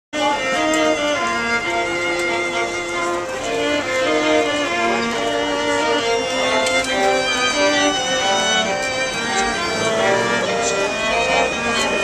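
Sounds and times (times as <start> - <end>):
string trio playing held notes: 0.2 - 12.0.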